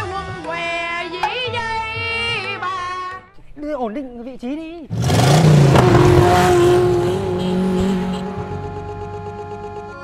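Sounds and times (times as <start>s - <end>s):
background music: 0.0s - 3.4s, 5.5s - 10.0s
motor scooter engine revving: 4.9s - 9.7s.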